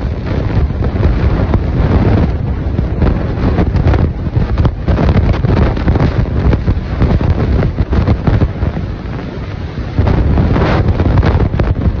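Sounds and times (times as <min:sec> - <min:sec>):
water rushing through dam spillway: 0:00.0 - 0:12.0
wind buffeting microphone: 0:00.0 - 0:12.0.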